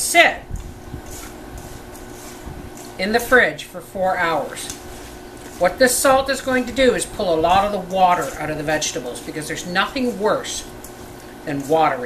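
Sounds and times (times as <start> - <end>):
faint steady hum: 0.0 - 12.0
vegetable pieces rustling in bowl: 0.6 - 12.0.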